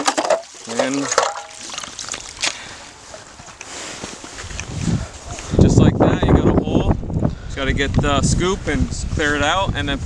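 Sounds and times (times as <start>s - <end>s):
water and ice slush sloshing: 0.0s - 5.0s.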